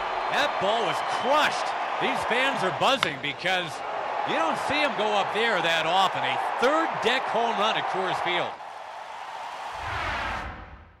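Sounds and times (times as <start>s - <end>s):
noisy whoosh: 9.7s - 11.0s.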